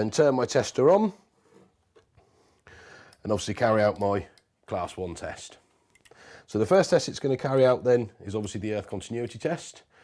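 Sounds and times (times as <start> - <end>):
man speaking: 0.0 - 1.2, 3.2 - 5.7, 6.5 - 9.9
soft breath: 1.2 - 3.2, 5.6 - 6.5.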